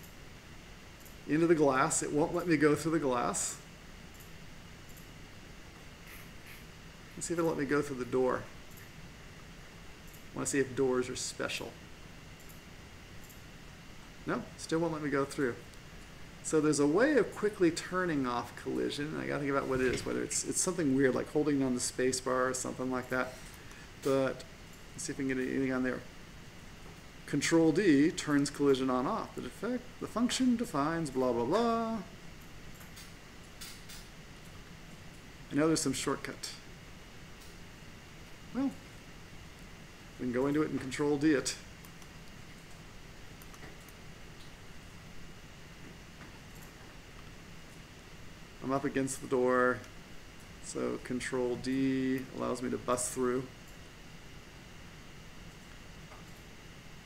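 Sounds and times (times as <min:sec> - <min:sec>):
faint background hiss: 0:00.0 - 0:57.0
faint steady hum: 0:00.0 - 0:57.0
man speaking a word: 0:16.4 - 0:23.3.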